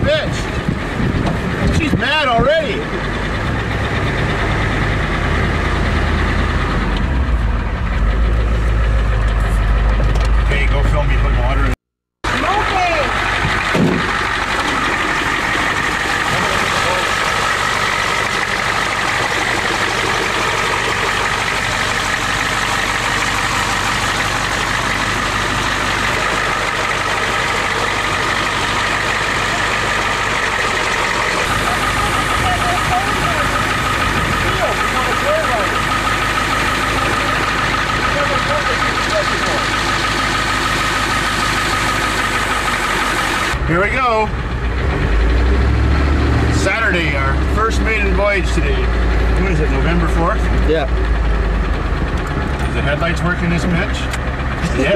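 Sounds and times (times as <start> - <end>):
deep rumble: 0.0 - 54.9
truck engine idling: 0.0 - 54.9.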